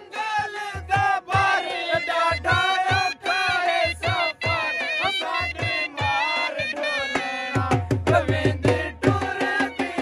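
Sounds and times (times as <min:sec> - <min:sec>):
drum beats: 0:00.0 - 0:10.0.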